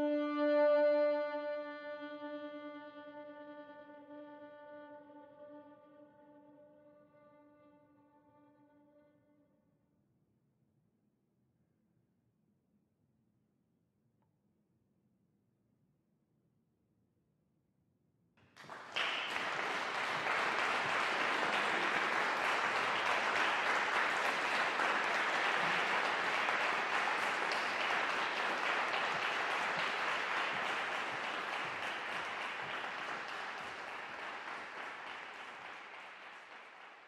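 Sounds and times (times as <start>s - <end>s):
audience applauding: 18.6s - 37.0s.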